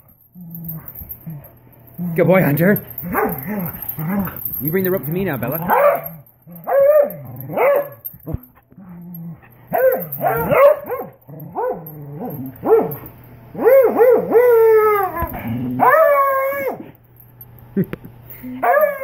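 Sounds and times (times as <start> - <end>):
dogs barking and yipping: 2.4 - 8.5, 9.6 - 16.9, 18.6 - 19.0.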